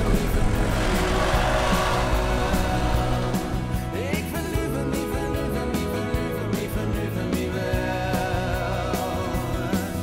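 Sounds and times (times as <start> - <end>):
van engine driving off: 0.0 - 6.3
background music: 0.0 - 10.0.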